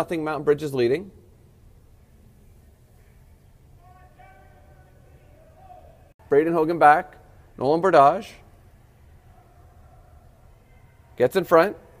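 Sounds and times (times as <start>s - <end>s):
low steady hum: 0.0s - 12.0s
distant voice calling out: 3.8s - 6.1s.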